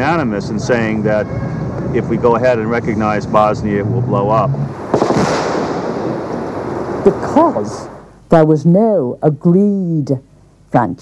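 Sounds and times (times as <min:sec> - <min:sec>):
explosion blast: 0:04.7 - 0:08.1
sharp bang: 0:04.7 - 0:08.1.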